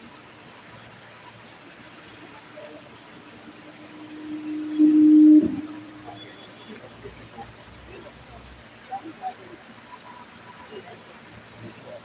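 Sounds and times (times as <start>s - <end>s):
microphone feedback tone: 2.6s - 6.9s.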